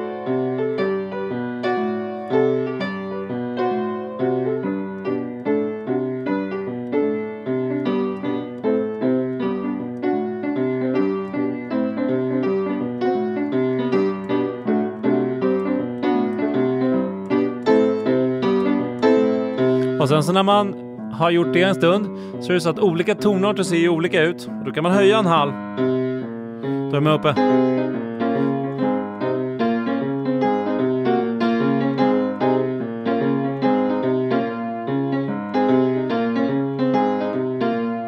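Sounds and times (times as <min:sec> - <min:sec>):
piano bass line exercise: 0:00.0 - 0:38.0
piano chords: 0:00.0 - 0:38.0.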